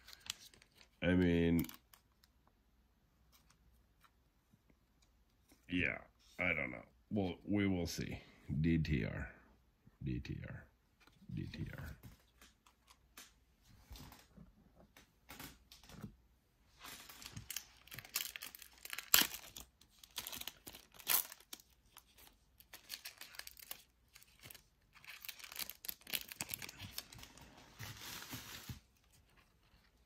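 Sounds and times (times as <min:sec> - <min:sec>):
plastic wrapper crinkling and tearing: 0:00.0 - 0:02.3, 0:16.8 - 0:30.0.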